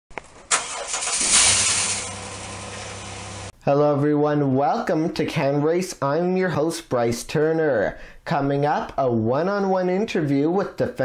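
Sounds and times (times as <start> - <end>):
car engine starting and idling: 0.4 - 3.5.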